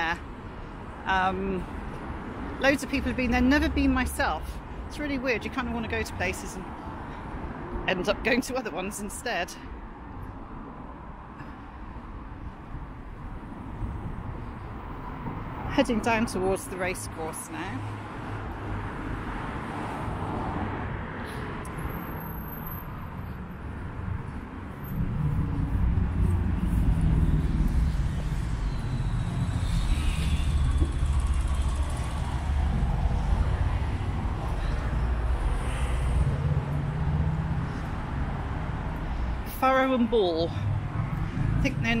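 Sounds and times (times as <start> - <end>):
cars passing: 0.0 - 42.0
low rumble: 24.8 - 35.5.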